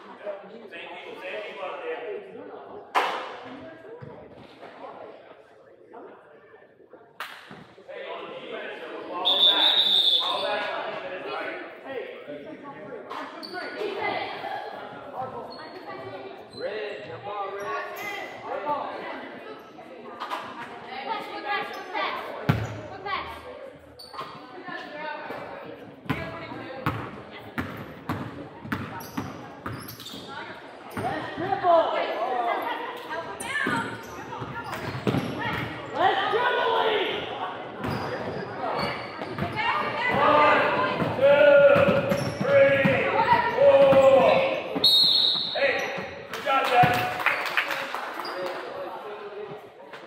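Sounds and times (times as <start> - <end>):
short high whistle: 9.3 - 10.4, 44.9 - 45.6.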